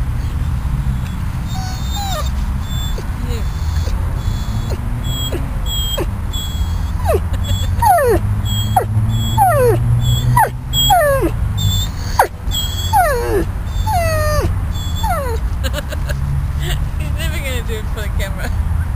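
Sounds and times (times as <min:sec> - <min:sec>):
dog whining: 0:01.4 - 0:15.5.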